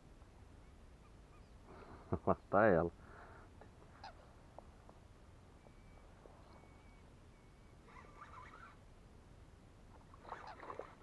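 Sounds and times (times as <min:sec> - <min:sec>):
bird calls: 0:00.6 - 0:02.5, 0:03.9 - 0:04.4, 0:05.5 - 0:08.8, 0:09.9 - 0:11.0.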